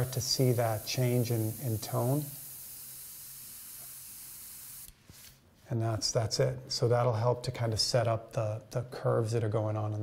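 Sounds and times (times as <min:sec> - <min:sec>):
airbrush spraying air hiss: 0:00.0 - 0:05.4.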